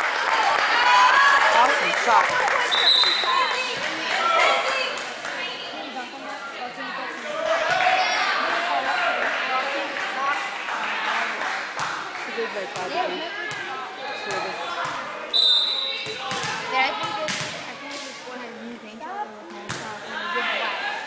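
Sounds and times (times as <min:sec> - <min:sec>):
crowd chatter: 0:00.0 - 0:21.0
referee's short whistle: 0:02.7 - 0:03.3, 0:15.3 - 0:16.0
volleyball bouncing on floor: 0:16.0 - 0:17.6.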